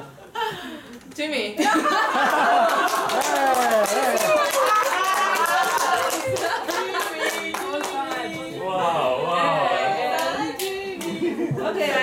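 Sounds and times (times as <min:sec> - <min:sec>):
voices in a room: 0:00.0 - 0:12.0
people laughing: 0:01.6 - 0:07.9, 0:11.0 - 0:12.0
audience clapping: 0:02.2 - 0:08.4.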